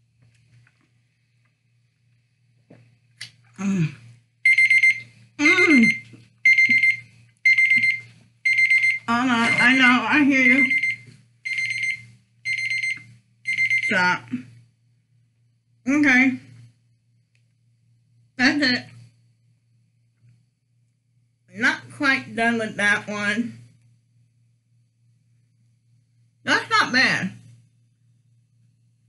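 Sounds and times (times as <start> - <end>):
electronic alarm beeping: 4.4 - 14.2.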